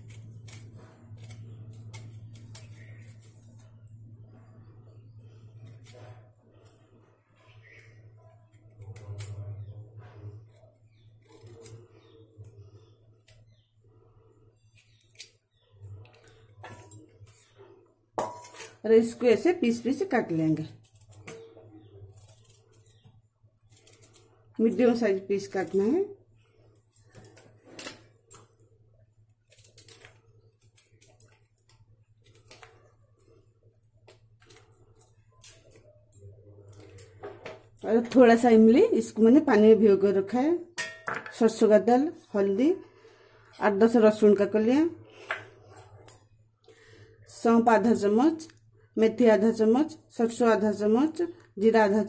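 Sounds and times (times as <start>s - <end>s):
knife scraping through yam: 0.0s - 3.8s, 5.0s - 8.0s, 8.6s - 12.2s, 14.6s - 19.2s
faint low hum: 0.0s - 40.7s.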